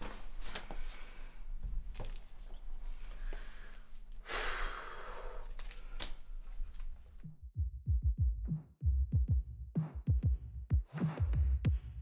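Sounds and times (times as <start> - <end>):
person sighing: 3.2 - 6.5.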